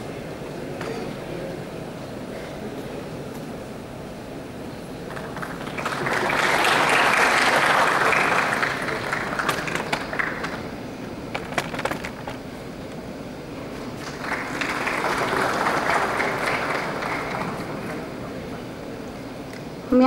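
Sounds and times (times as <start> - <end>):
audience applause: 5.0 - 12.4, 13.6 - 19.1.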